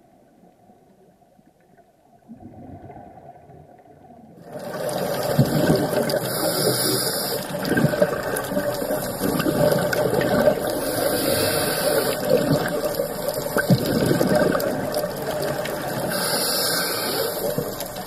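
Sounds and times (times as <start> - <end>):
underwater rushing water noise: 0.0 - 18.0.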